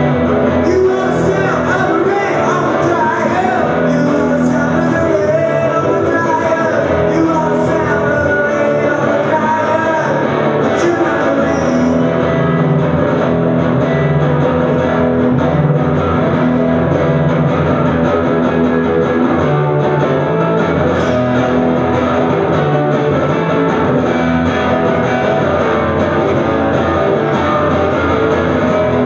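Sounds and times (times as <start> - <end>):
electric guitar strummed chords: 0.0 - 29.0.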